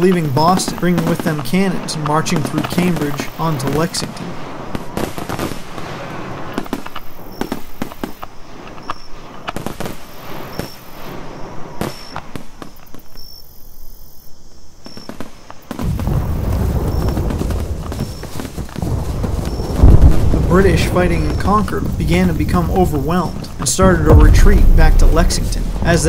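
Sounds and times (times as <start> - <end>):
deep continuous rumble: 15.9 - 26.0
musket shots cracking: 19.5 - 26.0.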